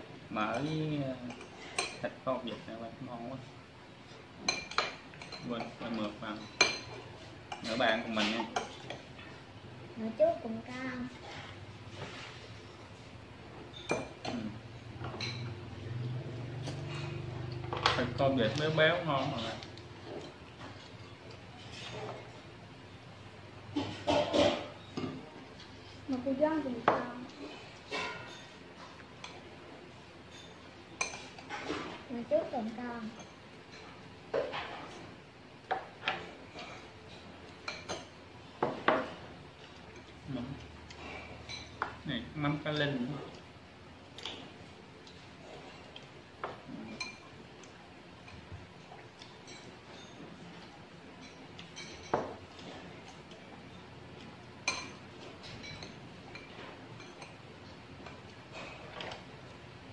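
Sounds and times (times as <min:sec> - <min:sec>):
utensils clinking on ceramic bowls: 0:45.7 - 0:47.4, 0:49.1 - 0:59.4.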